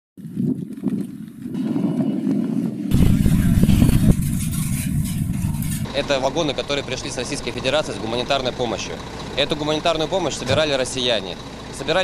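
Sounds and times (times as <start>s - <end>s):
freight train rumble: 2.8s - 12.0s.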